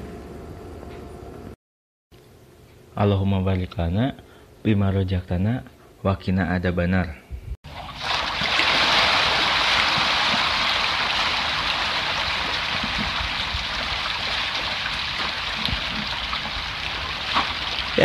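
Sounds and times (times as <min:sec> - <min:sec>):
fish splashing at water surface: 0:07.7 - 0:18.0.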